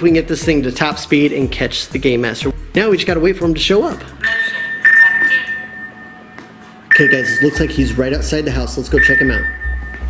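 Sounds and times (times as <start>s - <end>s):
high electronic beep: 4.2s - 8.1s, 8.9s - 10.0s.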